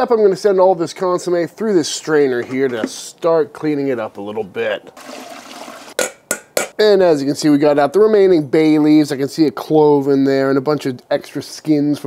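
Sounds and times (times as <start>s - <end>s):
liquid pouring through strainer: 5.0s - 6.0s.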